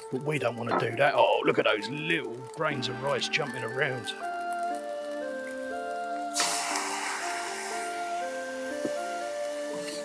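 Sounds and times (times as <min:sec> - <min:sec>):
background music: 0:00.0 - 0:10.0
sauce sizzling in hot wok: 0:04.2 - 0:10.0.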